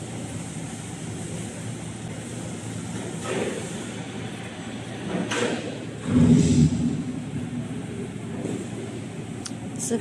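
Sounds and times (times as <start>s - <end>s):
production line machinery running: 0.0s - 10.0s.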